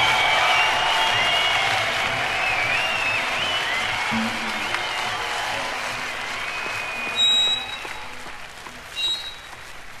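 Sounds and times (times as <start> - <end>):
audience applauding and cheering: 0.0 - 10.0
shrill whistles: 0.1 - 5.2, 6.4 - 8.0, 9.0 - 9.5.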